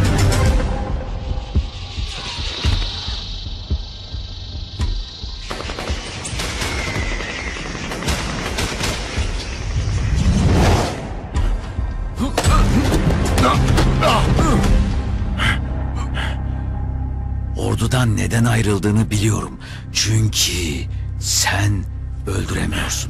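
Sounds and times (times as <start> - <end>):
action film music: 0.0 - 23.0.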